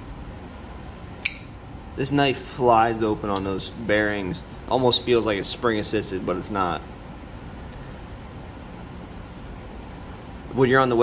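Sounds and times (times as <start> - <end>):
folding knife blade locking click: 1.2 - 1.5.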